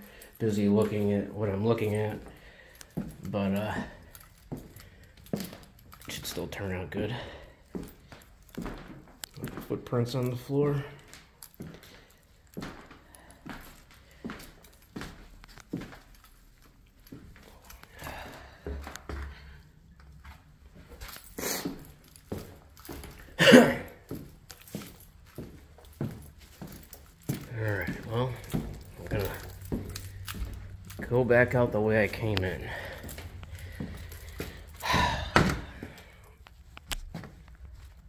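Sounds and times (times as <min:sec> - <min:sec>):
footsteps on gritty floor: 0:07.7 - 0:38.0.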